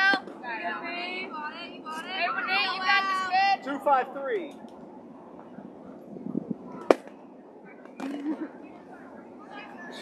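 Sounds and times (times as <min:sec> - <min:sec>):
spectator background noise: 0:00.0 - 0:10.0.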